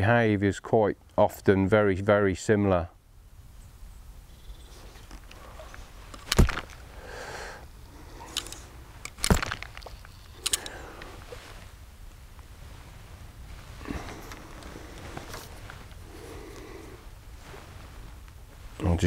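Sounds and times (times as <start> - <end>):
faint outdoor background: 0.0 - 19.0.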